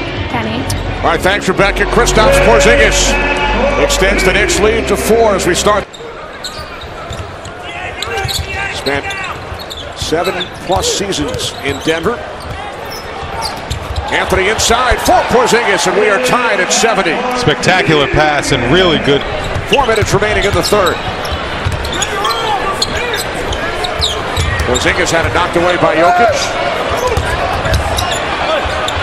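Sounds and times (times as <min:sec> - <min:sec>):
arena crowd murmur: 0:00.0 - 0:29.0.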